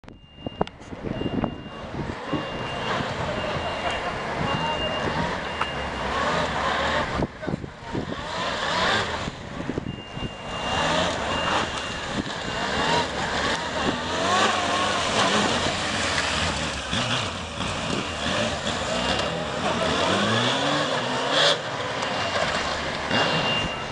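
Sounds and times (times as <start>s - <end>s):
motorcycle engines revving: 0.4s - 23.9s.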